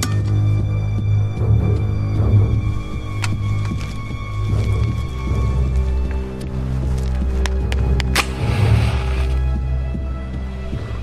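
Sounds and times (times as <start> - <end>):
low music drone: 0.0 - 11.0
match flaring hiss: 8.0 - 9.6
match scraping on matchbox: 8.2 - 9.4.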